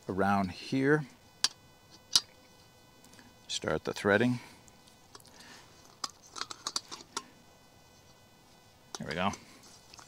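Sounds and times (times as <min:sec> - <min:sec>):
metal threads clicking and scraping: 0:05.1 - 0:07.3.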